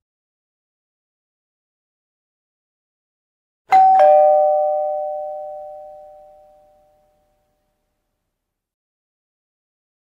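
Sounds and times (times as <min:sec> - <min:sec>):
two-tone doorbell chime: 0:03.7 - 0:07.6.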